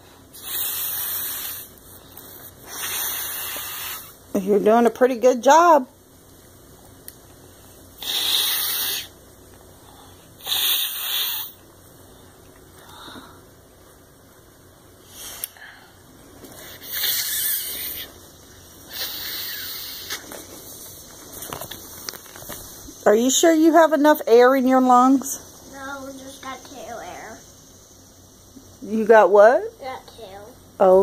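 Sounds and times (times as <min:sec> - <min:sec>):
child blowing puffs of air: 0:00.3 - 0:01.8, 0:02.6 - 0:04.2, 0:08.0 - 0:09.2, 0:09.8 - 0:11.6, 0:15.0 - 0:15.7, 0:16.5 - 0:18.2, 0:18.8 - 0:20.4.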